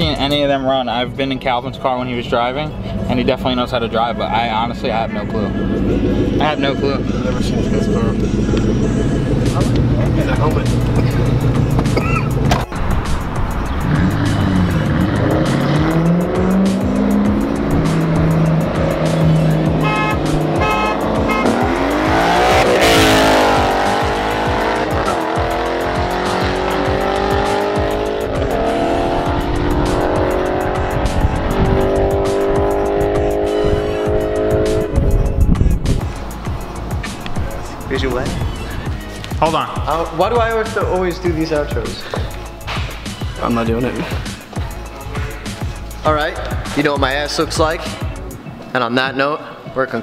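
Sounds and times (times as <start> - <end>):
cars passing by: 0.1 - 50.0
car engines accelerating hard: 2.7 - 48.5.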